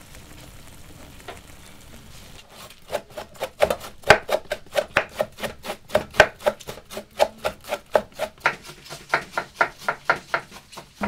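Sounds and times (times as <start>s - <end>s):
knife shredding cabbage on board: 2.5s - 11.0s.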